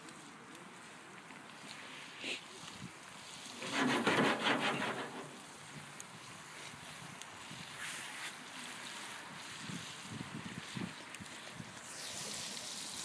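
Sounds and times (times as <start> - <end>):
wood fire hissing: 0.0 - 13.0.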